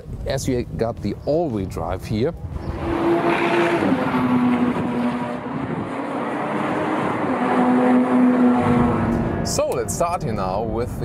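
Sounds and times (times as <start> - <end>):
sports car driving past: 2.6 - 10.1.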